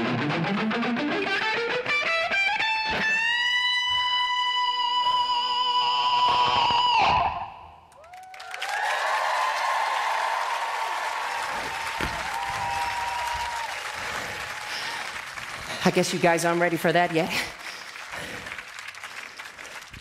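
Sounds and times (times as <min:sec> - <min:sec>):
audience applauding and cheering: 0:07.9 - 0:20.0.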